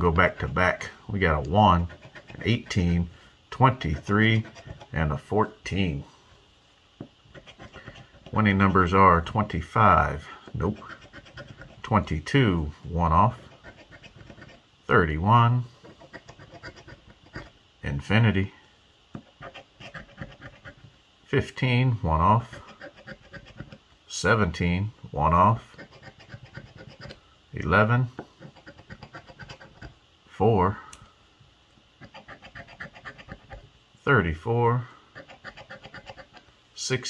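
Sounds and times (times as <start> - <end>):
coin scratching lottery ticket: 1.4 - 5.1, 7.3 - 9.5, 10.6 - 12.3, 13.2 - 14.6, 15.8 - 17.5, 19.3 - 20.9, 22.4 - 23.8, 25.5 - 27.2, 28.4 - 29.9, 32.0 - 33.6, 35.2 - 36.4.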